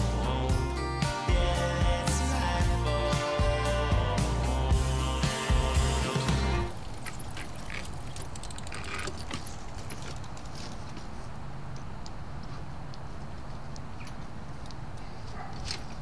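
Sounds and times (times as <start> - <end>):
bicycle clattering down: 6.7 - 11.0.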